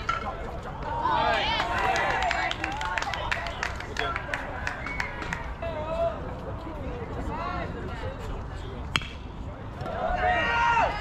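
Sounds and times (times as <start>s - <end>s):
baseball bat cracking ball: 8.9s - 9.2s.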